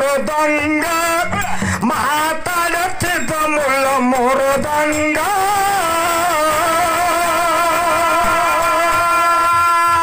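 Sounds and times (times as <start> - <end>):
man singing long note: 0.0 - 10.0.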